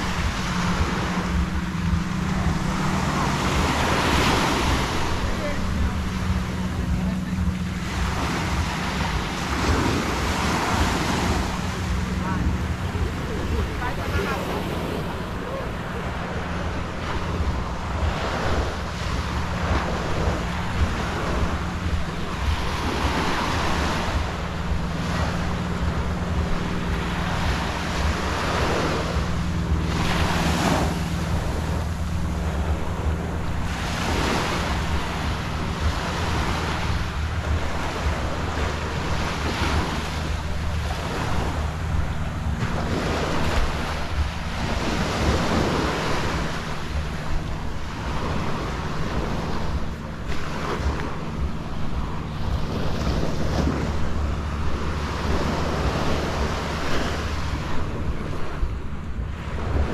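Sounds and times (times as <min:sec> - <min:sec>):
small waves breaking on sand: 0:00.0 - 0:59.9
wind buffeting microphone: 0:00.0 - 0:59.9.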